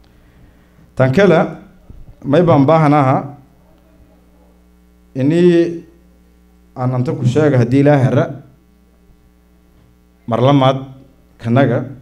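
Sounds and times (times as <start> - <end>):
low electrical mains hum: 0.0 - 12.0
man speaking over a microphone: 1.0 - 3.5, 5.1 - 6.0, 6.8 - 8.6, 10.3 - 12.0.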